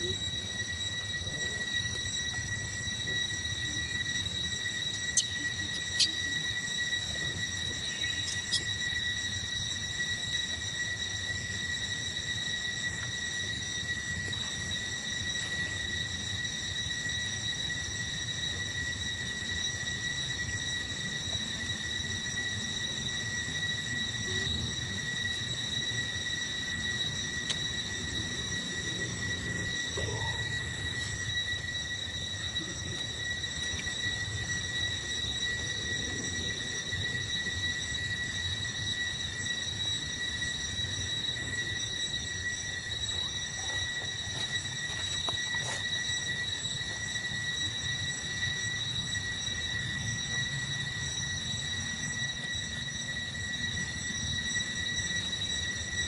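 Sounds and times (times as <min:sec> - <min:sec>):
high-pitched insect drone: 0:00.0 - 0:56.0.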